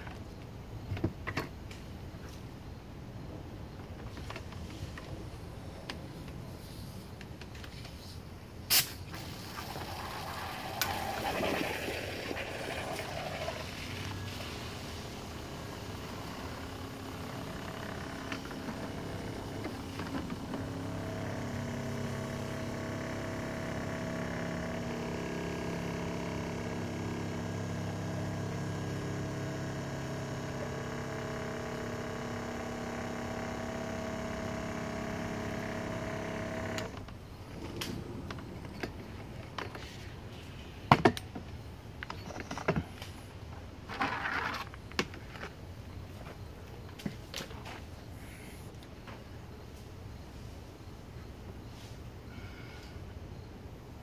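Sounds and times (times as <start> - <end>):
foam rushing through hose: 8.7 - 16.0
foam generator humming: 9.1 - 40.4.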